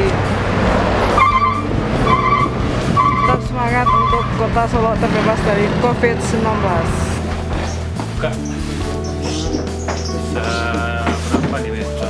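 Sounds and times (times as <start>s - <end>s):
truck engine and road noise: 0.0s - 11.6s.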